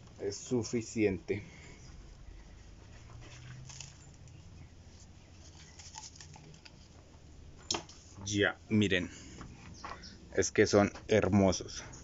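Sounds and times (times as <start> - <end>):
low faint hum: 0.0 - 12.0
soil crackling and rustling: 2.4 - 7.2.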